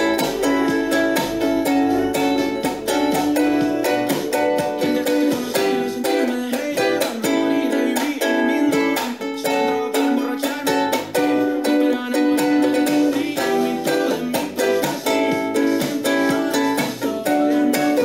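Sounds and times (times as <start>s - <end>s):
ukulele strumming: 0.0s - 18.0s.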